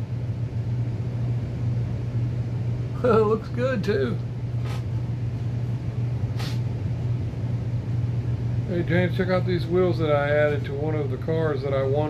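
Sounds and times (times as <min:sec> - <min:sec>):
low background hum: 0:00.0 - 0:12.0
short soft hisses: 0:04.6 - 0:04.9, 0:06.3 - 0:06.7.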